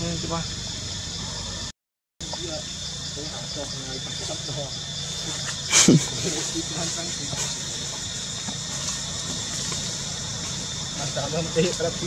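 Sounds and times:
insect drone: 0:00.0 - 0:12.0.

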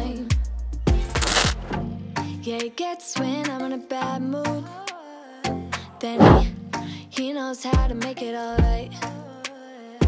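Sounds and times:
pop music with drum beat: 0:02.5 - 0:03.6, 0:06.0 - 0:06.6, 0:07.2 - 0:09.8.

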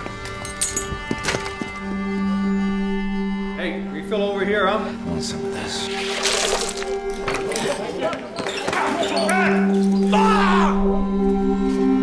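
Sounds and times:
men shouting: 0:08.6 - 0:10.9
music drone: 0:09.6 - 0:12.0.

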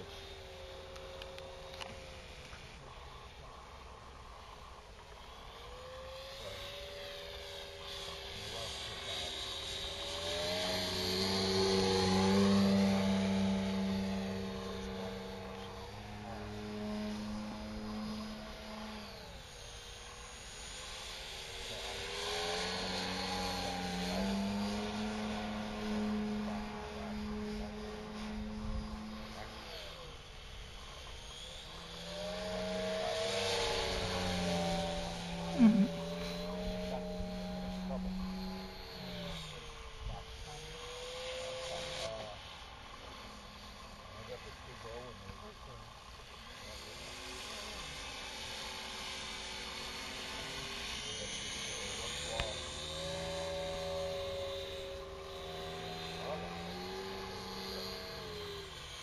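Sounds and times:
model airplane engine in flight: 0:00.0 - 0:59.0.

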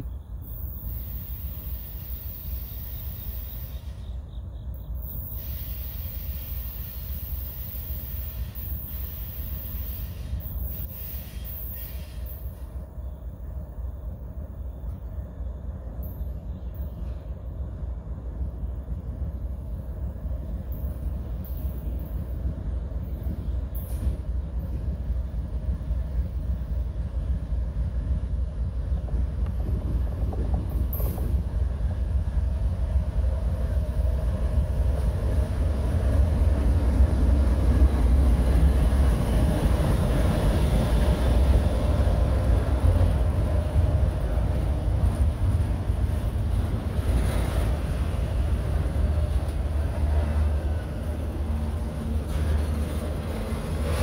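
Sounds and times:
diesel locomotive engine rumble: 0:00.0 - 0:54.0
freight cars rolling by: 0:07.0 - 0:54.0.

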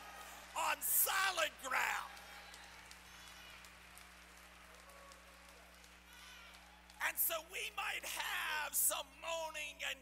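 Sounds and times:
congregation clapping: 0:00.0 - 0:09.0.

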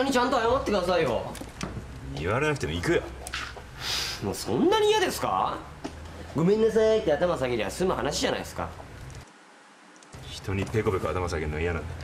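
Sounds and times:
man speaking: 0:02.0 - 0:03.2.

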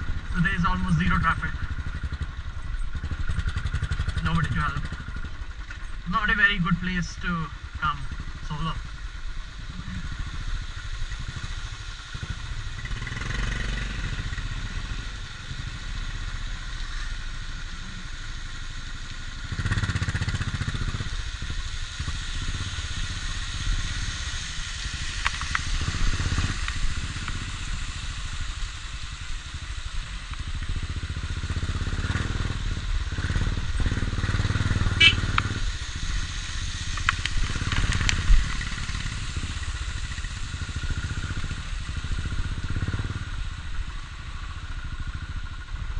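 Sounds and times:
motorcycle engine running: 0:00.0 - 0:45.9.

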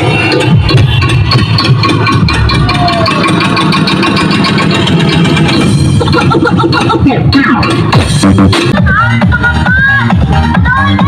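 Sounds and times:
bass-heavy electronic dance music: 0:00.0 - 0:11.0.

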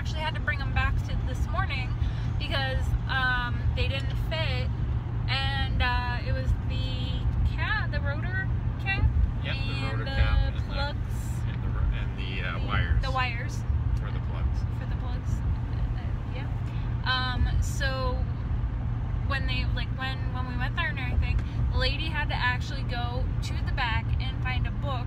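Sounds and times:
people talking: 0:00.0 - 0:04.7, 0:05.3 - 0:18.3, 0:19.3 - 0:25.0
truck engine rumble from cab: 0:00.0 - 0:25.0.

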